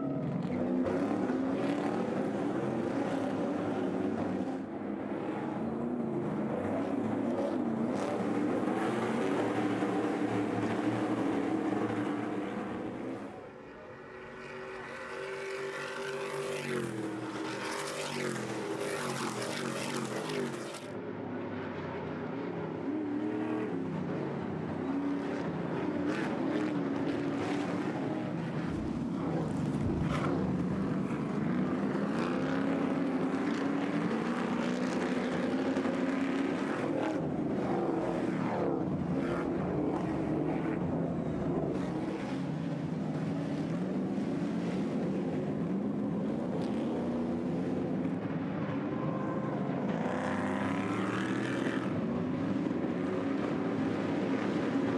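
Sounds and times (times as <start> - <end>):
racing engines revving: 0.1 - 20.9, 21.5 - 54.9.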